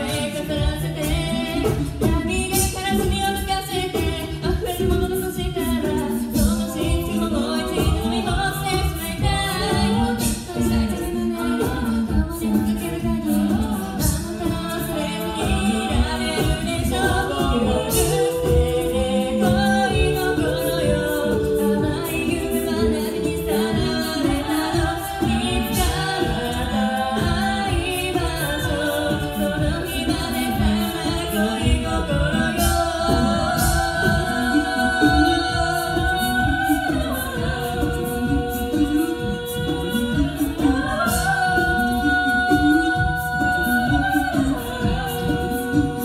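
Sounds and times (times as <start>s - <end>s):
women singing a cappella harmonies: 0.0s - 46.0s.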